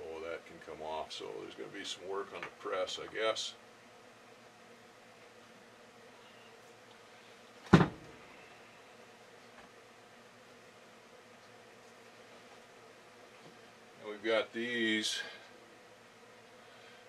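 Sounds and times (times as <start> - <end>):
faint steady hum: 0.0 - 17.0.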